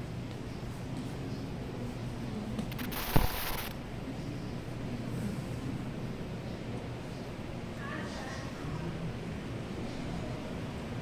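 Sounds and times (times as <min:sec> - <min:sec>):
low hum of indoor hall: 0:00.0 - 0:11.0
sharp knock with hiss: 0:02.7 - 0:03.7.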